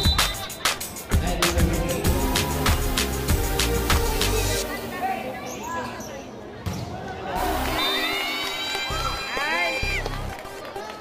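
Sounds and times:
background music with deep bass: 0.0s - 4.8s
crowd voices: 0.0s - 11.0s.

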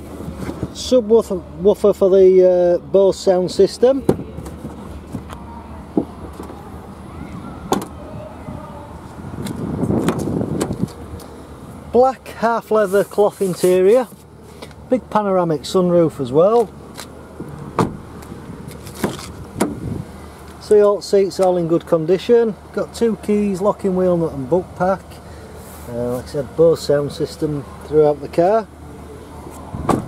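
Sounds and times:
car tailgate shutting and latching: 7.6s - 8.0s, 9.4s - 11.0s, 16.9s - 20.1s, 29.6s - 30.0s
car door knock: 17.8s - 18.0s.

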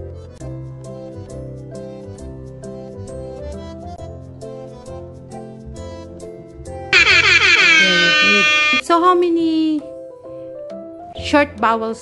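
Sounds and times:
pitched tone sliding down: 7.0s - 8.8s
short tone: 7.0s - 8.8s.

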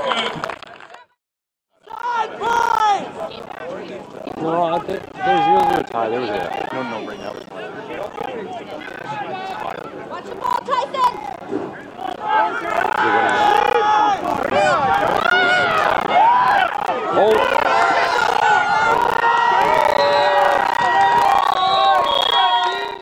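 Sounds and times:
crowd shouting and cheering: 1.8s - 23.0s.

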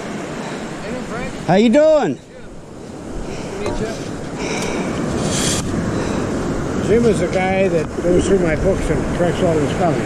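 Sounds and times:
ocean surf breaking: 0.0s - 10.0s
wind buffeting microphone: 0.0s - 10.0s.

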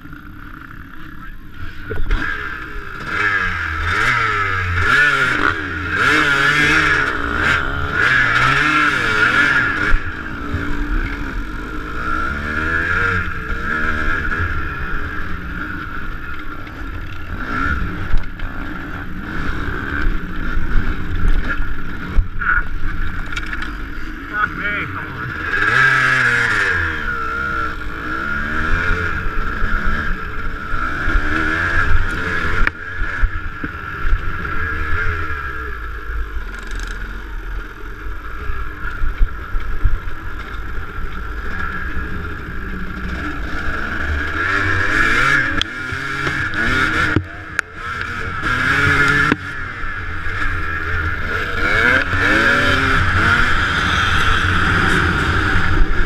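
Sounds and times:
dirt bike engine revving: 0.0s - 56.0s.

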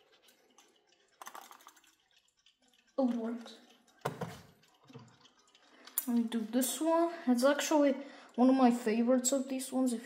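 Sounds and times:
clock knocking on wooden shelf: 4.0s - 5.1s.

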